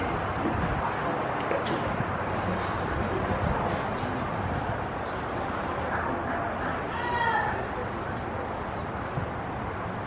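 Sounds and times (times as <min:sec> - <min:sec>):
distant people talking: 0:00.0 - 0:10.0
steady background rumble: 0:00.0 - 0:10.0.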